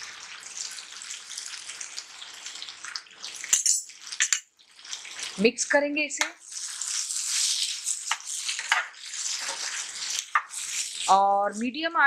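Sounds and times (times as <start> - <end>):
vegetables sizzling in hot oil: 0.0 - 11.6
spatula scraping a pan: 6.4 - 11.2.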